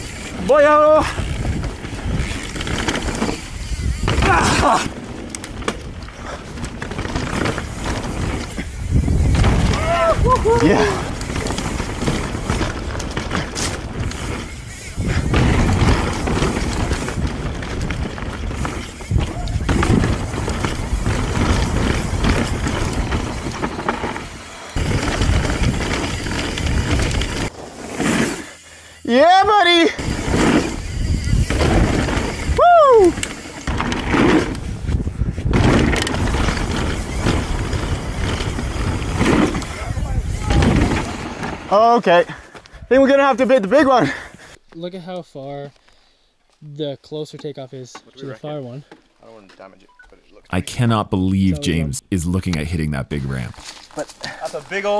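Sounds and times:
bike tyres rattling over rocks: 0.0 - 27.5, 30.0 - 32.6, 33.2 - 41.8
wind on microphone: 8.6 - 10.7
rider whooping: 9.6 - 11.2, 32.5 - 33.2.

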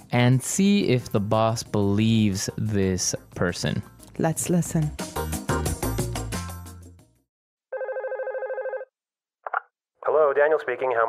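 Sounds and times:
music: 0.0 - 7.3
electronic telephone ring: 7.7 - 8.9.

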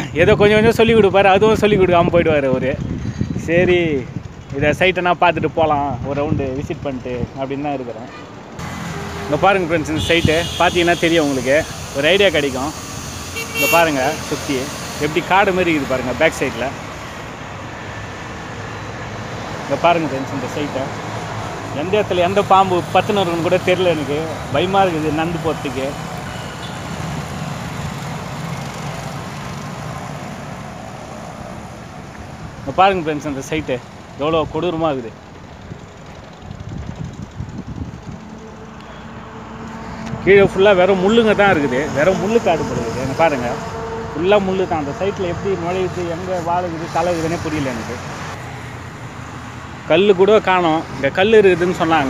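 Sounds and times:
wind buffeting microphone: 0.0 - 7.4, 35.4 - 38.5
distant road traffic: 0.0 - 52.0
man speaking: 9.3 - 12.8, 13.5 - 16.8, 21.8 - 26.0, 40.3 - 48.1, 49.9 - 52.0.

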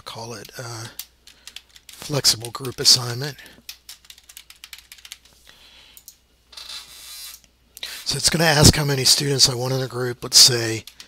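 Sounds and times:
keyboard keys tapping: 3.6 - 5.3.

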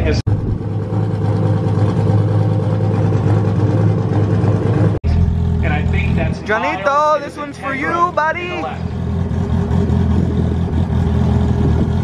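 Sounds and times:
race car engines idling loudly: 0.0 - 12.0.

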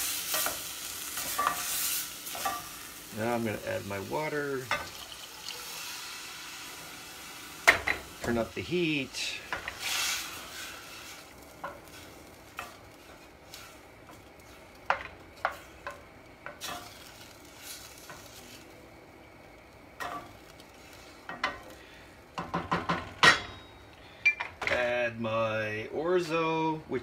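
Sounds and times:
faint hiss: 0.0 - 23.2
spoon knocking against pan: 22.4 - 23.7.

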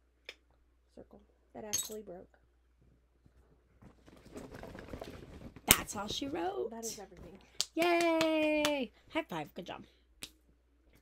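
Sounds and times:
makeup containers rattling: 4.0 - 6.3.

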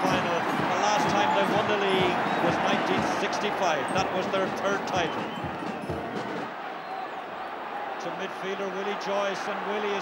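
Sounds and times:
murmur of spectators: 0.0 - 10.0.

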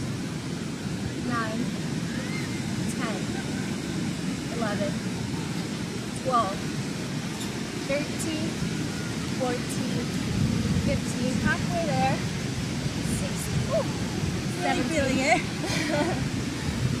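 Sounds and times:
beach background rush: 0.0 - 17.0
woman counting aloud: 1.2 - 1.7, 2.9 - 3.4, 4.5 - 5.0, 6.2 - 6.6, 7.9 - 8.6, 9.4 - 10.2, 10.9 - 12.2, 13.0 - 13.9, 14.6 - 15.4.

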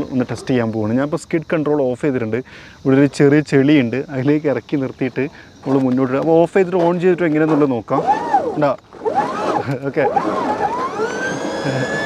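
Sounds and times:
electric scooter motor whining: 7.5 - 12.0.

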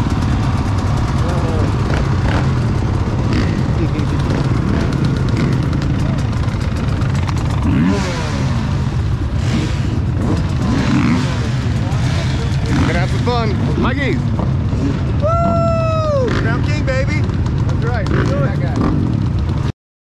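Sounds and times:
dirt bike engines idling: 0.0 - 19.7.

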